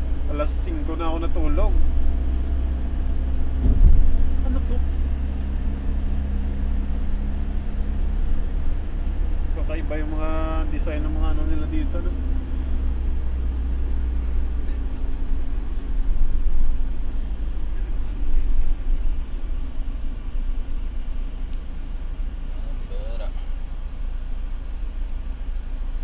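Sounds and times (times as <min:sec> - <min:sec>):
engine and road noise rumble: 0:00.0 - 0:26.0.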